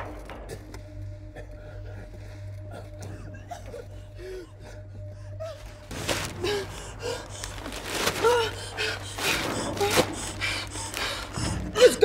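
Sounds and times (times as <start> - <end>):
woman gasping and breathing hard: 1.4 - 12.0
woman's strained cries: 6.2 - 12.0.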